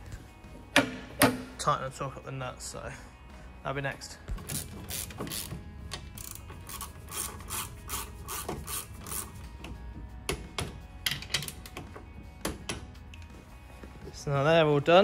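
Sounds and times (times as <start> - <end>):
ratchet wrench clicking: 4.5 - 9.4.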